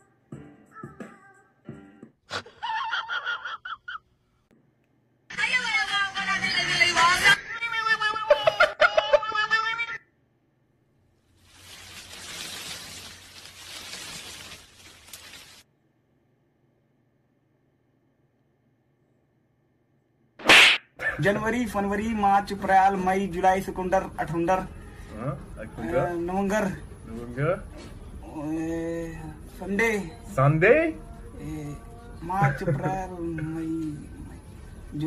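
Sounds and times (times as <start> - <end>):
short sharp swish: 20.4 - 20.9.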